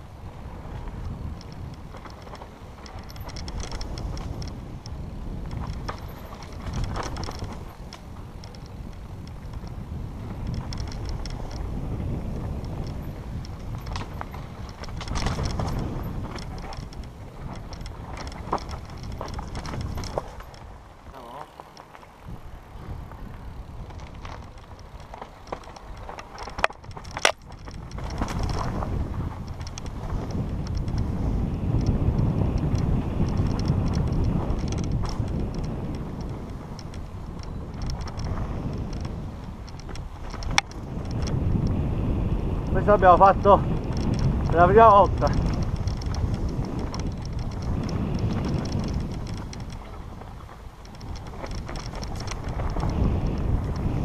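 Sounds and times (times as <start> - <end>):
bike rattling over bumps: 0.0 - 54.0
wind on microphone: 0.0 - 54.0
tyres rumbling on dirt: 0.2 - 54.0.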